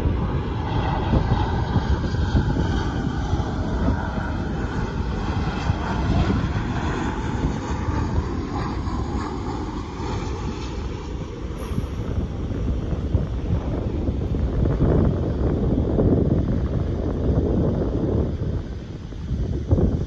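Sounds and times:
distant jet noise: 0.0s - 20.0s
wind buffeting microphone: 0.0s - 20.0s.

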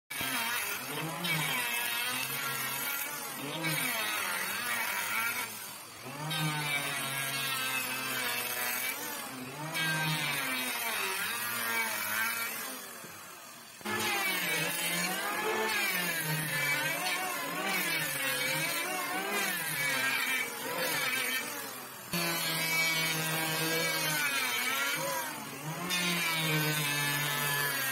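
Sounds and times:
electric planer cutting wood: 0.1s - 27.9s.

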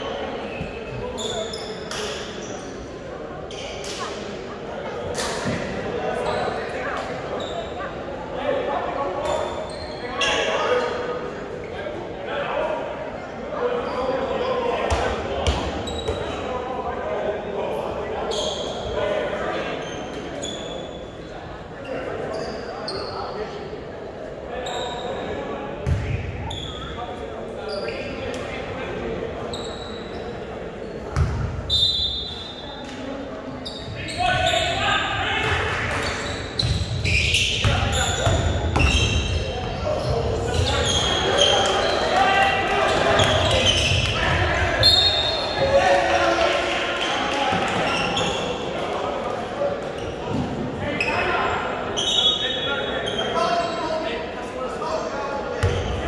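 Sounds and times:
sneakers squeaking: 0.1s - 4.2s, 5.1s - 8.0s, 9.2s - 10.9s, 14.8s - 16.5s, 18.2s - 21.2s, 21.8s - 23.6s, 24.6s - 28.6s, 29.4s - 45.9s, 47.0s - 48.7s, 49.9s - 54.2s, 55.6s - 56.0s.

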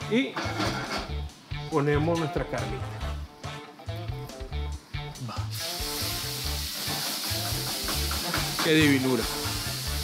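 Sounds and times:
steak sizzling in a frying pan: 5.5s - 10.0s.

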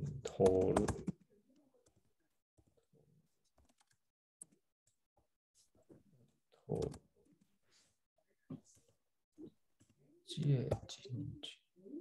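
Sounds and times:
man talking: 0.0s - 1.1s, 6.6s - 7.0s, 10.2s - 11.6s
typing on computer keyboard: 0.3s - 1.2s.

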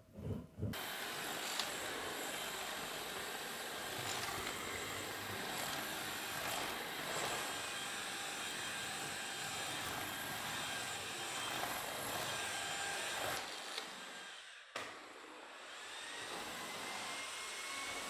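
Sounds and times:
vacuum cleaner running: 0.8s - 14.2s, 15.3s - 18.0s.

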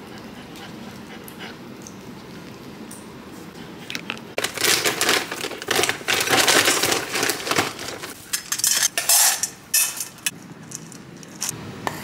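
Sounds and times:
handling sounds: 3.9s - 11.6s.

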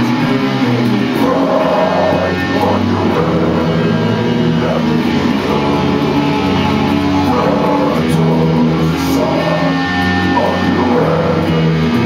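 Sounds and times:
electric guitars playing heavy metal: 0.0s - 12.0s.

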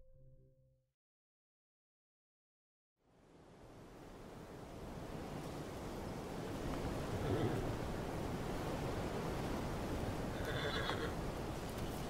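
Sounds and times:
horse whinnying: 10.3s - 11.2s.

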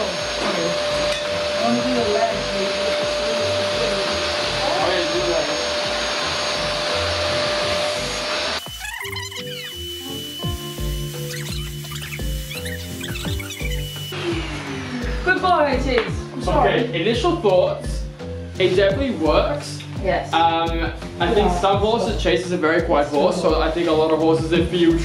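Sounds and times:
vacuum cleaner running: 0.0s - 17.0s
background music with steady beat: 0.0s - 25.0s.

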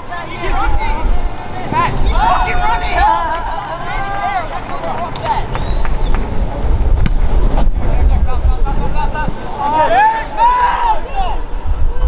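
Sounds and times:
shouts and voices: 0.0s - 5.8s, 7.9s - 12.0s
wind rumbling on microphone: 0.0s - 12.0s.

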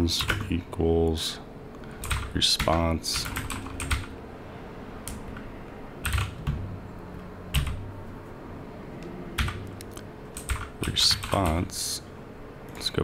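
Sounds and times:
computer keyboard keystrokes: 0.2s - 0.5s, 2.0s - 4.1s, 5.0s - 6.6s, 7.6s - 7.8s, 9.4s - 11.6s.

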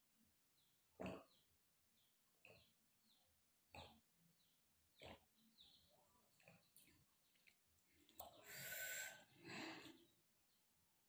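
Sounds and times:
person sipping and breathing: 7.8s - 10.2s.

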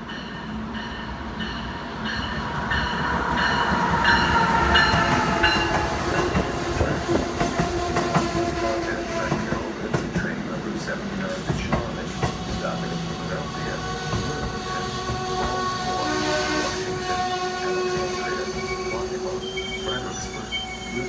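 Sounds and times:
passenger train rolling past: 0.0s - 21.0s.

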